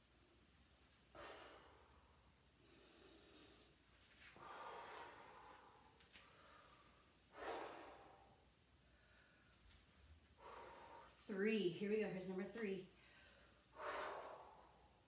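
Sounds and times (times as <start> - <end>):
woman breathing hard: 1.1 - 9.7, 10.3 - 11.3, 12.9 - 15.0.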